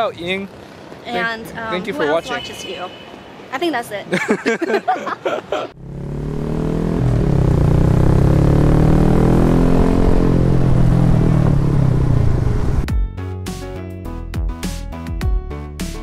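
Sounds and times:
small motorcycle engine: 0:05.8 - 0:12.8
music with sharp beat: 0:12.9 - 0:16.0.

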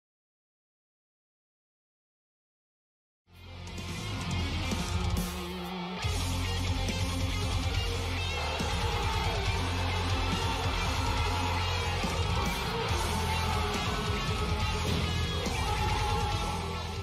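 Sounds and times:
guitar background music: 0:03.3 - 0:17.0.

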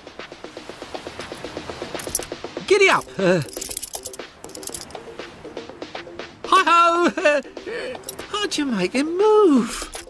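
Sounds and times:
background music repeated notes: 0:00.0 - 0:10.0
dialogue: 0:06.3 - 0:09.9.

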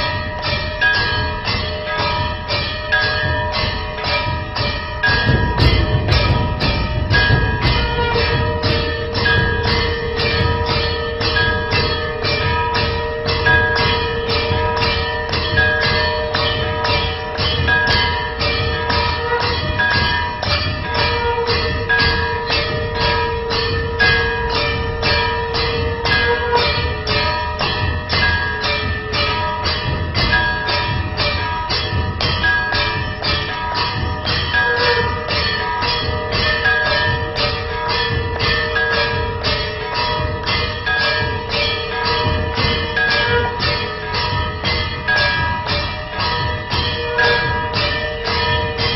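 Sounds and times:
temple bells ringing rapidly: 0:00.0 - 0:48.9.

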